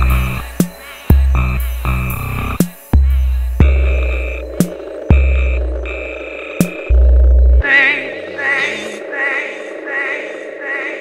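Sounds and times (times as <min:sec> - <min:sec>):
synth drone: 0:00.0 - 0:11.0.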